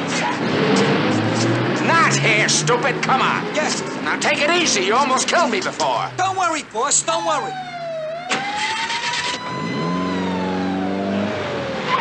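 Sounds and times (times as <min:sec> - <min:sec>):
buggy engine starting and revving: 0:00.0 - 0:12.0
siren wailing: 0:07.0 - 0:12.0.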